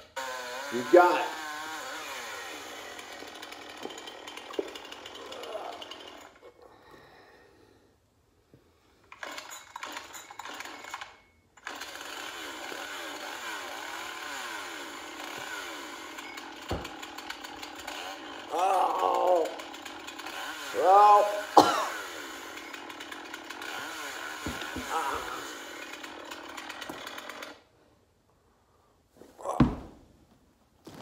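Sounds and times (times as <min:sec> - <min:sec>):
chainsaw engine revving: 0:00.0 - 0:06.5, 0:09.2 - 0:27.7.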